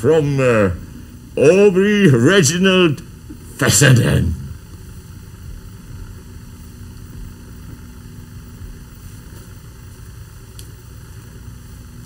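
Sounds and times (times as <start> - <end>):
low hum: 0.0 - 12.0
steady static hiss: 0.0 - 12.0.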